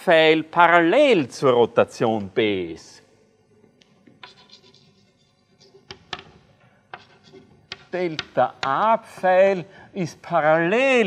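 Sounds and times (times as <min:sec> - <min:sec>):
chalk tapping on board: 0:04.2 - 0:05.0, 0:05.6 - 0:09.4
chalk scratching on blackboard: 0:04.2 - 0:09.3.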